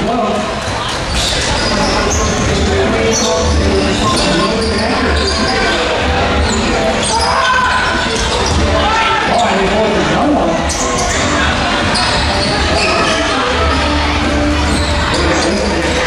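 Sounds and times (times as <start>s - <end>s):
background voices: 0.0s - 16.0s.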